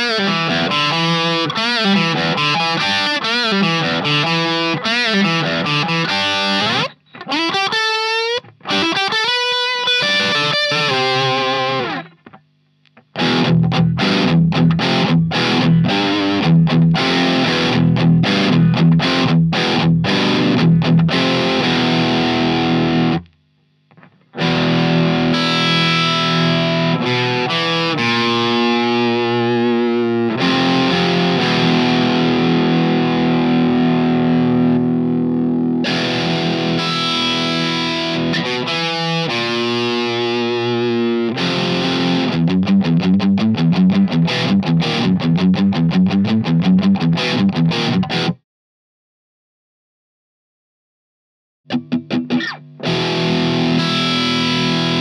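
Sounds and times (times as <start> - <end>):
distorted electric guitar: 0.0 - 48.4, 51.7 - 55.0.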